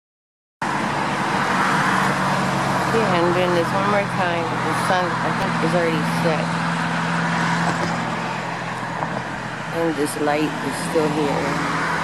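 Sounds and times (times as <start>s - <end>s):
road traffic with engine hum: 0.6s - 12.0s.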